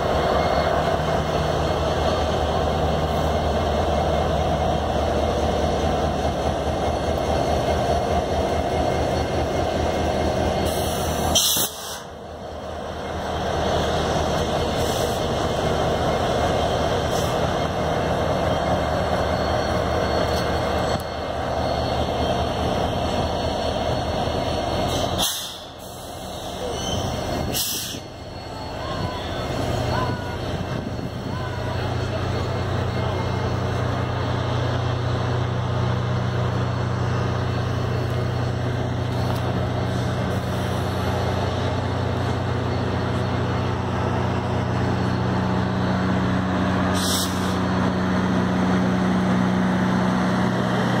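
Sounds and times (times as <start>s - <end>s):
train cars rolling on rails: 0.0s - 51.0s.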